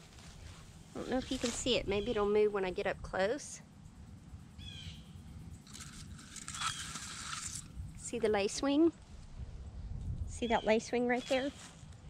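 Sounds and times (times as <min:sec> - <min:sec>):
grass rustling against phone: 0:00.0 - 0:02.2, 0:05.6 - 0:09.4, 0:11.0 - 0:12.0.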